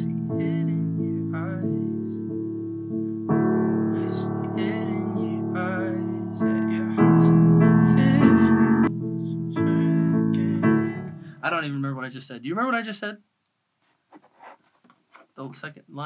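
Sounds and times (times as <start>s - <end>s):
piano chords: 0.0s - 11.6s.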